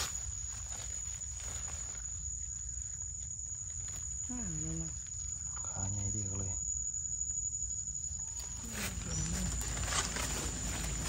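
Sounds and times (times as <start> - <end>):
high-pitched insect drone: 0.0 - 11.0.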